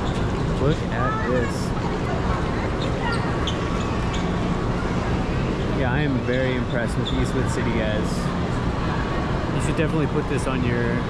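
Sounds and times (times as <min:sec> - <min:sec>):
urban background rumble: 0:00.0 - 0:11.0.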